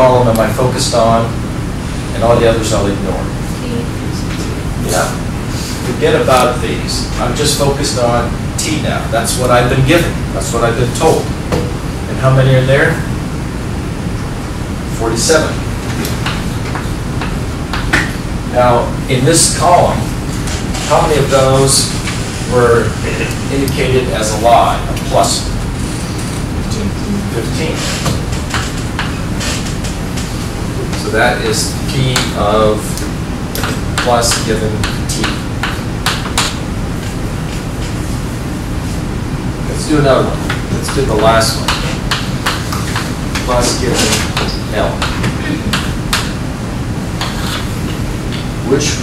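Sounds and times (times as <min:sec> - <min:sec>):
background hiss: 0:00.0 - 0:49.0
low room hum: 0:00.0 - 0:49.0
writing taps on a board: 0:33.6 - 0:36.6.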